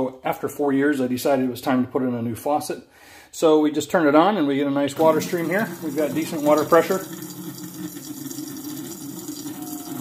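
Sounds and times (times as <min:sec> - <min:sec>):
water running from faucet into sink: 0:05.0 - 0:10.0.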